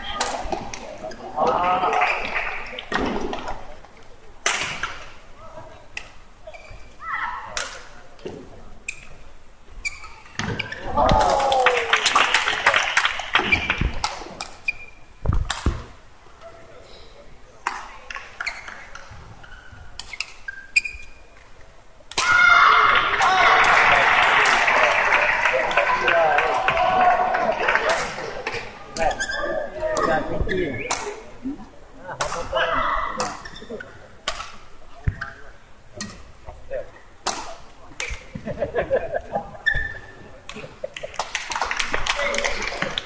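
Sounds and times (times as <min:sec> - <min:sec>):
shoes squeaking on court: 0:06.5 - 0:07.0, 0:09.8 - 0:10.8, 0:18.4 - 0:21.4, 0:29.0 - 0:31.0, 0:39.6 - 0:40.2
rackets striking shuttlecock: 0:30.8 - 0:31.2, 0:37.2 - 0:38.3.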